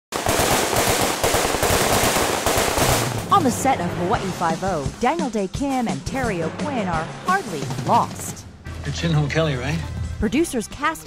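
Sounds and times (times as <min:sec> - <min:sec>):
rapid automatic gunfire: 0:00.1 - 0:03.3.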